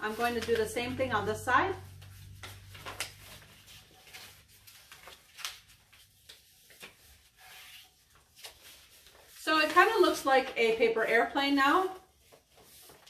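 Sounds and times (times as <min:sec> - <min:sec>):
paper being folded: 0:00.0 - 0:10.9, 0:11.8 - 0:13.0.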